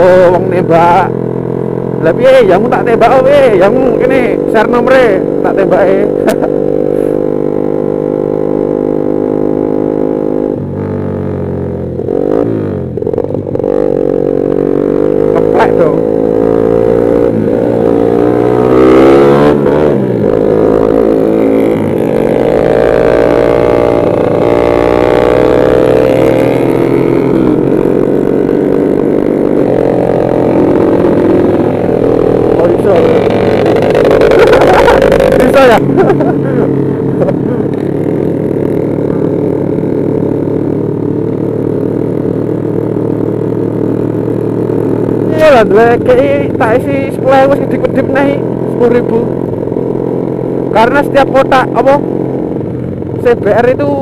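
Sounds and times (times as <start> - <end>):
motorcycle engine drone: 0.0 - 54.0.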